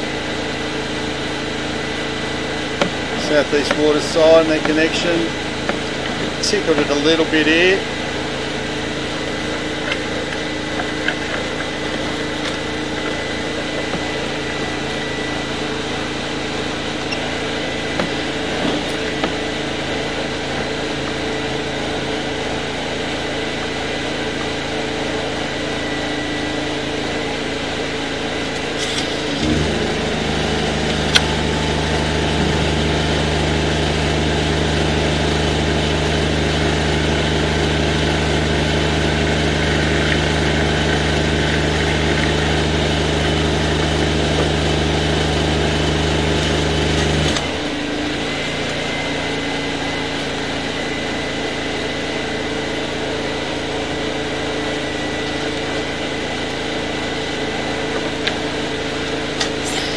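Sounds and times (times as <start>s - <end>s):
machine engine running: 0.0s - 59.9s
deep drone: 24.1s - 50.4s.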